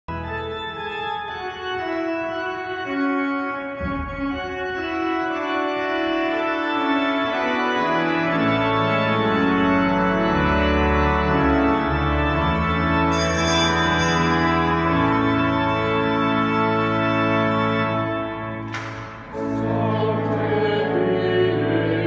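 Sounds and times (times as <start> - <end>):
church organ chords: 0.1 - 22.0.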